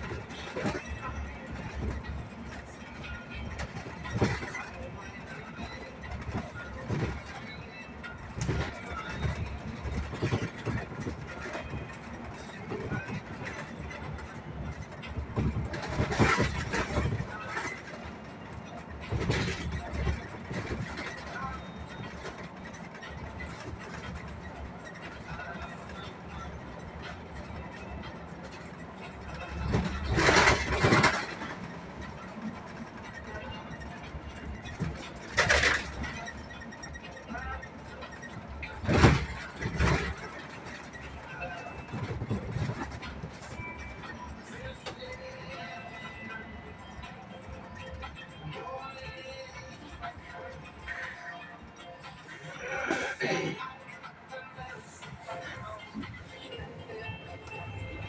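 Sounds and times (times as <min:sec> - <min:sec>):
bus engine and road noise: 0:00.0 - 0:58.0.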